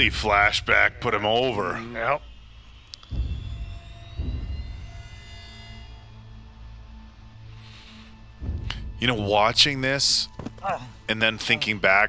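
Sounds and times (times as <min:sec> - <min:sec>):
dark orchestral drone: 0:00.0 - 0:12.0.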